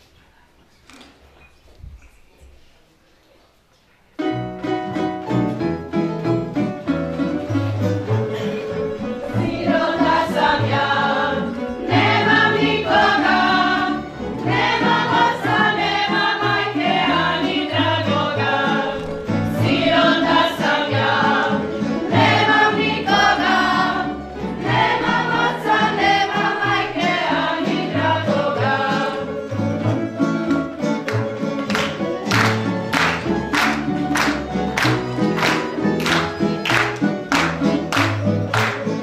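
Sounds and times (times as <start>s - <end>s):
string band with bass: 4.2s - 39.0s
mixed voices singing folk song: 7.5s - 39.0s.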